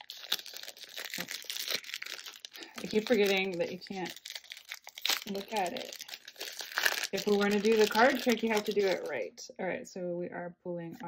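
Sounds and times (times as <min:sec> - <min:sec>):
foil wrapper crinkling and tearing: 0:00.0 - 0:09.2.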